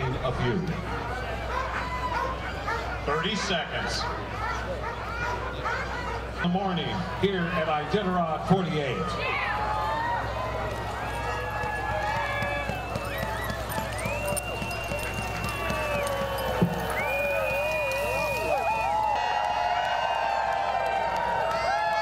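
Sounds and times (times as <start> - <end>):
dogs yelping and howling: 0.8 - 6.6, 9.2 - 19.0.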